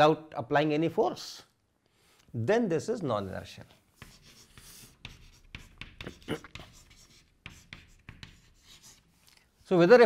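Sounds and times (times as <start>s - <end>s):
chalk scratching on blackboard: 3.2s - 9.3s.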